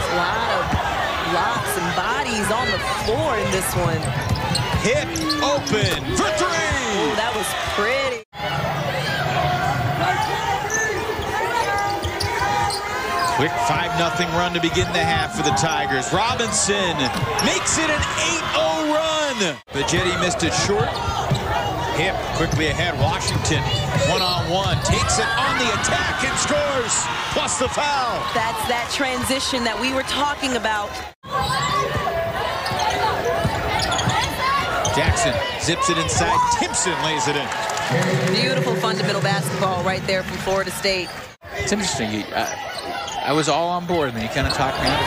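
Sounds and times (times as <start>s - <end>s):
sneakers squeaking: 0.0s - 8.1s, 9.6s - 26.5s, 30.9s - 45.0s
voices: 0.0s - 45.0s
sneaker squeaks: 2.7s - 6.8s, 10.6s - 13.6s, 16.9s - 18.3s, 31.3s - 35.5s, 42.4s - 43.6s, 44.2s - 45.0s.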